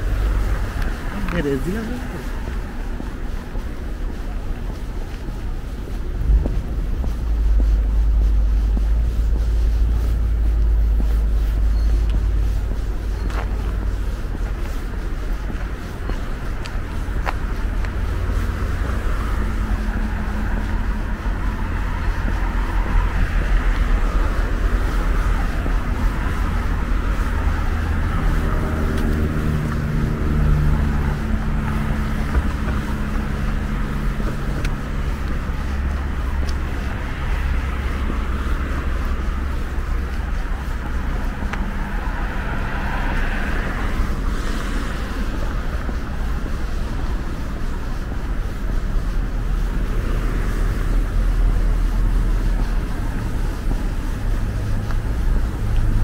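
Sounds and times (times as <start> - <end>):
cars passing: 0.0 - 56.0
vehicle engine hum: 0.0 - 56.0
wind rumble on microphone: 0.0 - 56.0.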